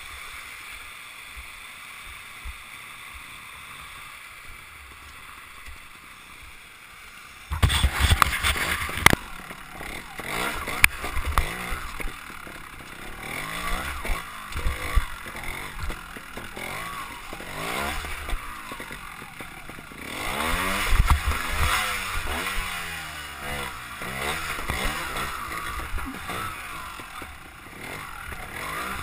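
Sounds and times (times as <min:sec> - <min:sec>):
motorcycle engine revving: 0:07.3 - 0:29.0
wheels knocking on rock: 0:07.5 - 0:29.0.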